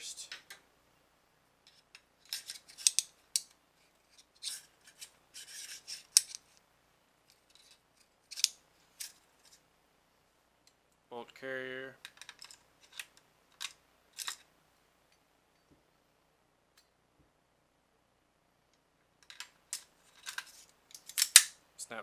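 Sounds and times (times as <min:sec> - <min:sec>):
metallic scrapes and clicks: 0:01.7 - 0:06.6.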